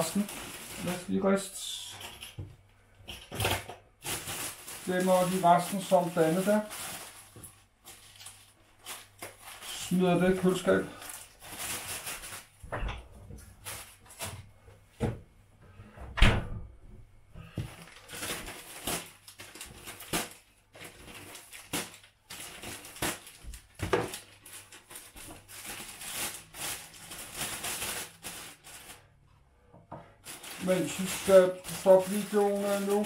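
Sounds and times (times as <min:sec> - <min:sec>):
plastic bag rustling: 0:00.0 - 0:02.4, 0:03.2 - 0:12.7, 0:13.5 - 0:14.5, 0:17.5 - 0:29.2, 0:30.2 - 0:33.0.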